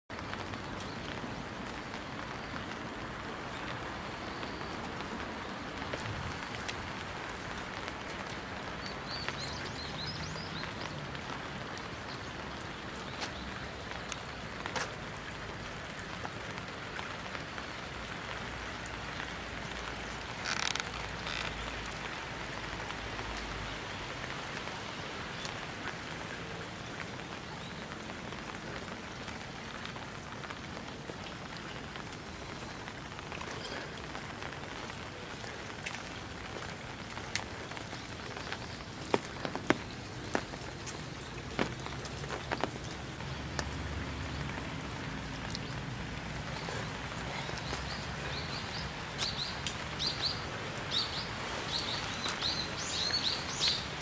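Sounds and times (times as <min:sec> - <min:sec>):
rain drop taps: 0:00.1 - 0:54.0
steady rain hiss: 0:00.1 - 0:54.0.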